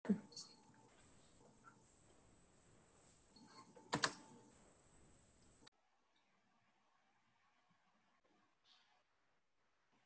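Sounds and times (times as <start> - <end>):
thin high whine: 0.1 - 5.7.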